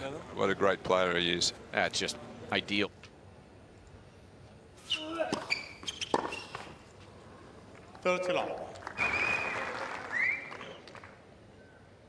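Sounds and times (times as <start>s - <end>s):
shoe squeaks on court: 4.8s - 6.8s.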